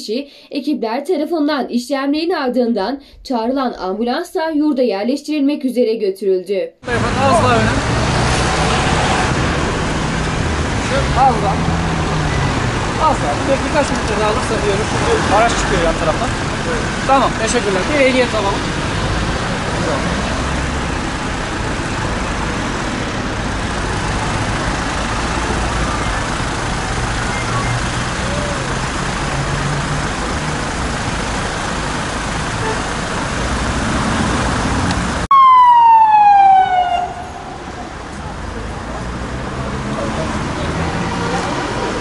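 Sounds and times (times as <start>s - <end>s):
street traffic: 6.8s - 42.0s
vehicle engine running: 9.0s - 35.3s
police siren wail: 35.3s - 38.1s.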